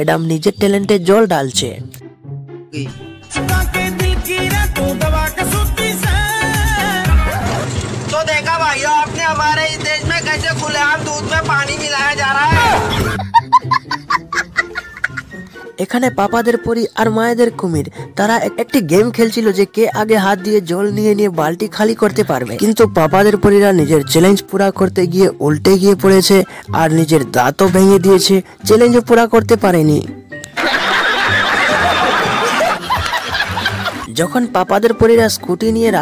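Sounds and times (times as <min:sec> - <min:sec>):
background music: 0:00.0 - 0:36.0
crowd laughing: 0:12.6 - 0:15.5, 0:30.5 - 0:34.1.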